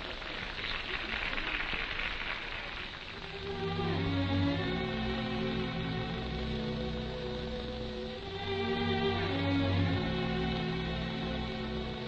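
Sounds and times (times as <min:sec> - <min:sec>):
steady hiss: 0:00.0 - 0:12.0
low held score notes: 0:03.3 - 0:12.0.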